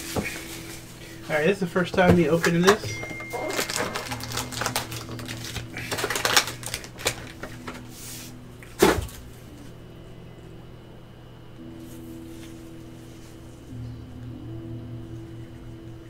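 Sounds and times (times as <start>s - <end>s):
foil packs crinkling and rustling: 2.3s - 8.3s.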